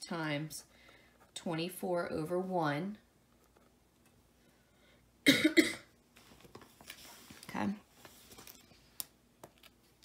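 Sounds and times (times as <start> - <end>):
person coughing: 5.2 - 5.9.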